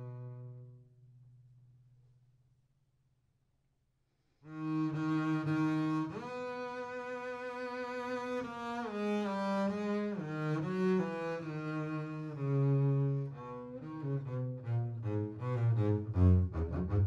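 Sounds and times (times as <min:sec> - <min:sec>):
bowed string instrument melody: 0:00.0 - 0:01.1, 0:04.5 - 0:17.0.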